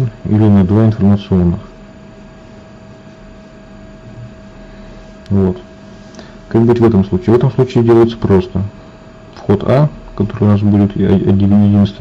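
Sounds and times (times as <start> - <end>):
low mains hum: 0.0 - 12.0.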